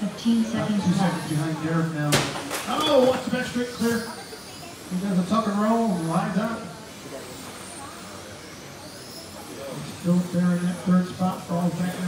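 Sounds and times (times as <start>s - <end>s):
high motor whine: 0.0s - 12.0s.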